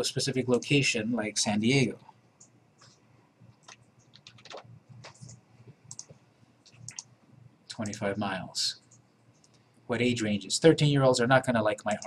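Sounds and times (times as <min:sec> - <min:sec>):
faint low hum: 0:00.0 - 0:12.0
computer mouse clicks: 0:02.4 - 0:08.1, 0:08.8 - 0:09.7, 0:11.8 - 0:12.0.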